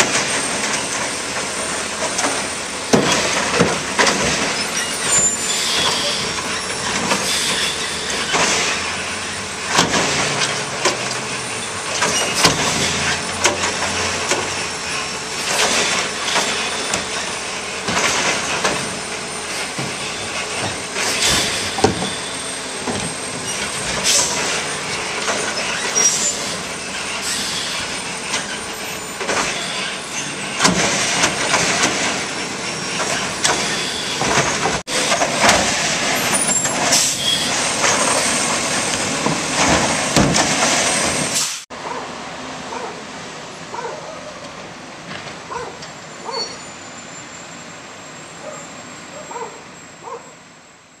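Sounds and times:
garbage truck engine and arm: 0.0 - 50.3
distant garbage truck: 0.0 - 51.0
sharp bangs of carts: 29.2 - 38.6.

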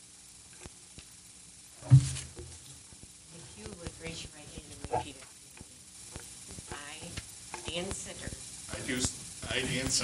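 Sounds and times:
steady hiss: 0.0 - 10.0
person speaking: 3.4 - 5.4.

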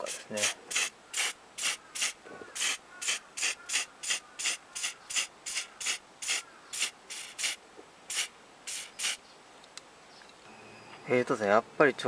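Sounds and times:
aerosol spray paint hissing: 0.1 - 9.2.

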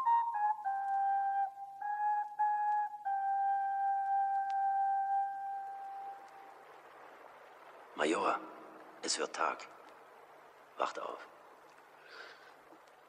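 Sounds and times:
solo flute playing: 0.0 - 6.8
faint hiss: 0.0 - 13.0.

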